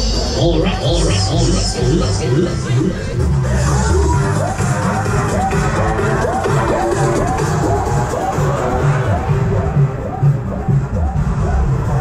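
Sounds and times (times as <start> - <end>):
fairground ride music: 0.0 - 12.0
pulsing bass beat: 0.0 - 12.0.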